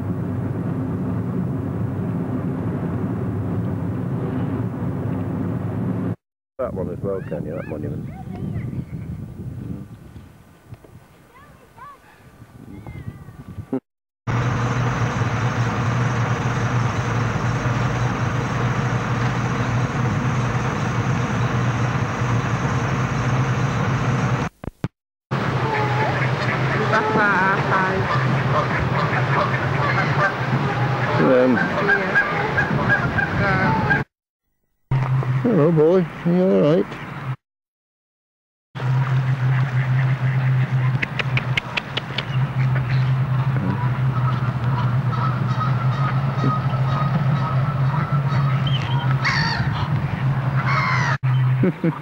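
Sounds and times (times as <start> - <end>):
ducks and geese calling: 25.5 - 34.1, 38.8 - 52.0.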